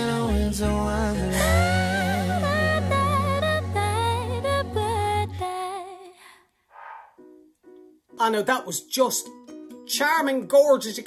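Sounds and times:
a cappella singing: 0.0 - 6.2
soft breath-like swell: 6.2 - 7.2.

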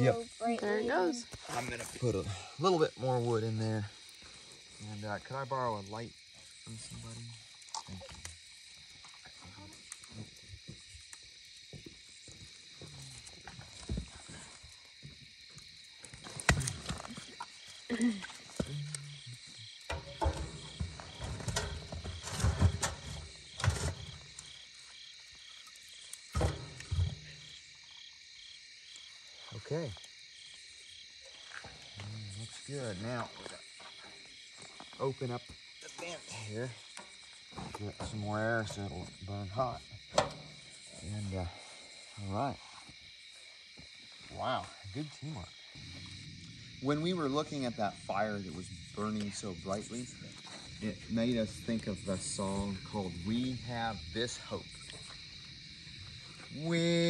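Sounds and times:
crickets chirping: 0.0 - 57.0
firewood knocking in metal firebox: 19.9 - 24.6, 26.3 - 27.6, 39.9 - 40.8.

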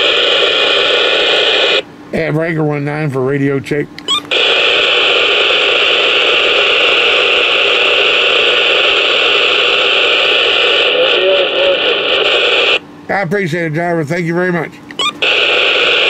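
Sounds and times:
radio static hiss: 0.0 - 2.3, 4.3 - 12.8, 14.4 - 16.0
faint voice over radio: 10.0 - 12.8.

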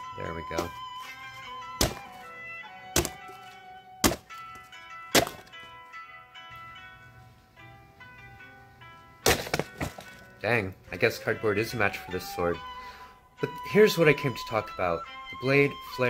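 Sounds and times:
background music: 0.0 - 16.0
sword hacking cardboard boxes: 1.8 - 2.2, 3.0 - 4.4, 5.1 - 5.5, 9.3 - 10.2.

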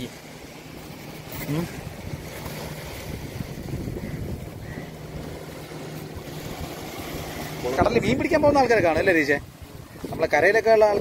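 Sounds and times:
surf: 0.0 - 11.0
wind: 0.0 - 11.0.

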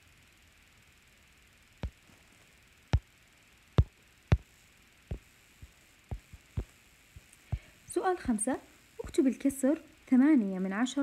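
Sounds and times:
light taps on touchscreen: 5.1 - 7.7.

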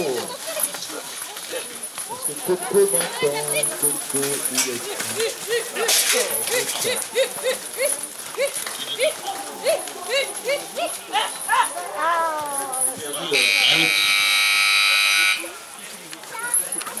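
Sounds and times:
electric buzzer: 13.3 - 15.5.

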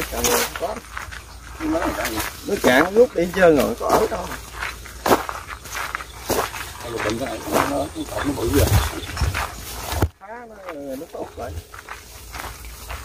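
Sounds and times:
footsteps on overgrown path: 0.0 - 13.0
microphone handling rumble: 7.9 - 10.2.

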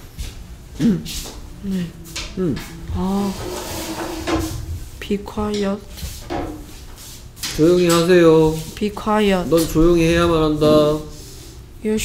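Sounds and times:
person humming: 0.7 - 5.6.

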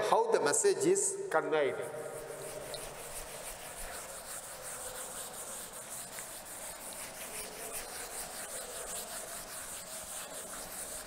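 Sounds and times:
duster rubbing chalkboard: 1.7 - 11.0.

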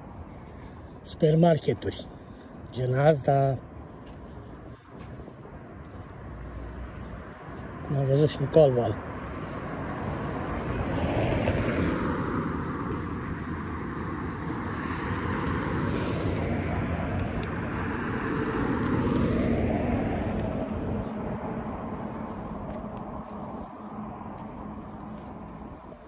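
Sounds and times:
cars driving past: 0.0 - 26.0.

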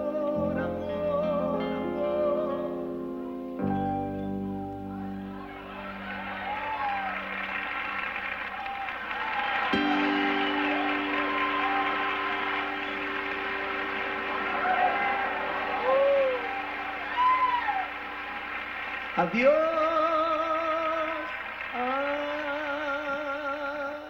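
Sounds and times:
live band holding a chord: 0.0 - 23.9.

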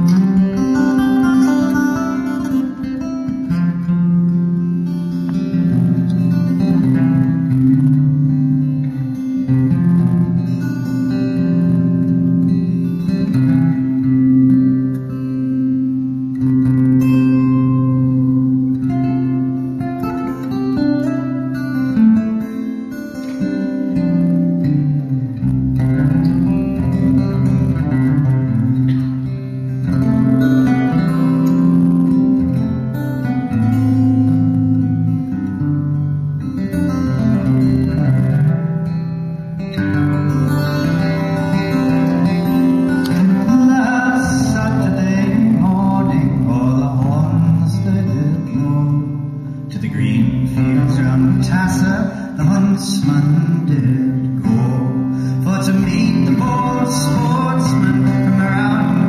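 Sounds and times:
solo acoustic guitar: 0.0 - 59.0.

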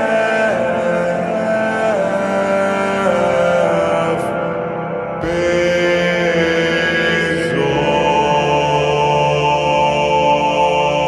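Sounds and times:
wordless vocal chant: 0.0 - 11.0.

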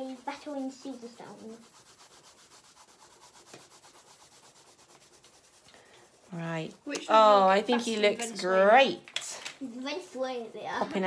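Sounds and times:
pencil shading on paper: 0.0 - 8.9.

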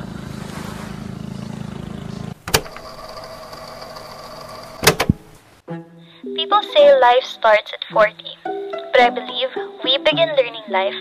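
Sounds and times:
low mechanical hum: 1.3 - 5.6
motor whirring: 2.5 - 5.4
sharp click: 4.8 - 5.4.

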